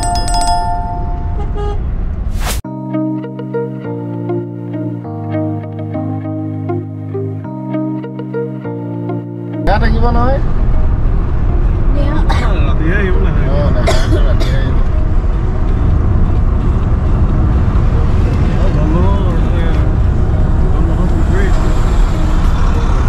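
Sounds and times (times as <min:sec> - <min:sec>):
car engine and tyres rumbling: 0:00.0 - 0:02.6, 0:09.6 - 0:23.0
people talking: 0:12.0 - 0:14.8, 0:18.6 - 0:19.8, 0:20.7 - 0:21.8.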